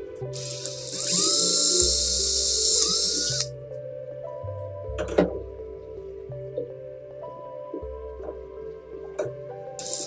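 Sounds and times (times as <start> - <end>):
background music: 0.0 - 10.0
rotary tool whining: 0.4 - 3.5, 9.8 - 10.0.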